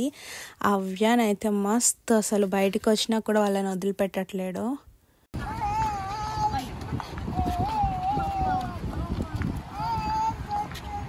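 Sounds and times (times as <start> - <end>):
low outdoor rumble: 5.4 - 11.0.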